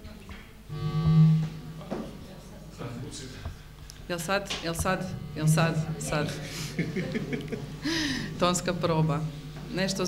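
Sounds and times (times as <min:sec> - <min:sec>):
electrical buzz through speakers: 0:00.6 - 0:10.0.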